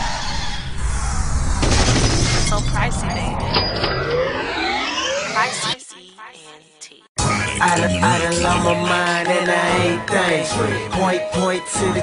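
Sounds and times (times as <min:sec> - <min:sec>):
shattering crash: 0:01.5 - 0:02.5.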